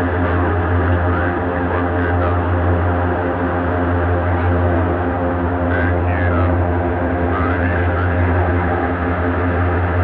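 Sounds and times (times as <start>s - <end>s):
electronic drone music: 0.0s - 10.0s.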